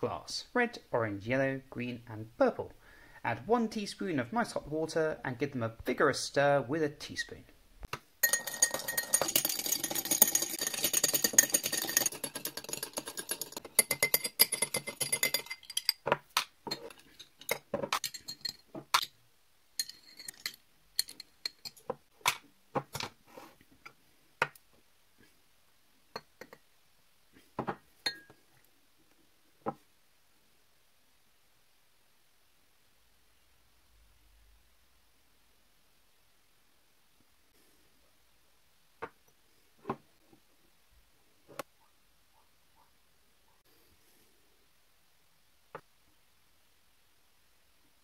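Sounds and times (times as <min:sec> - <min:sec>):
teaspoon clinking in glass: 0:08.2 - 0:16.0, 0:16.7 - 0:19.1, 0:19.8 - 0:21.8.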